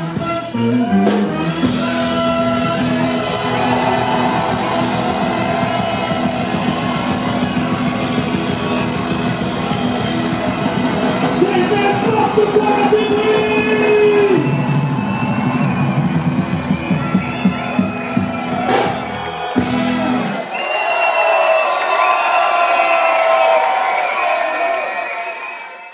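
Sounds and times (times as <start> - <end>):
live rock band with brass: 0.0 - 21.0
crowd cheering loudly: 0.0 - 25.9.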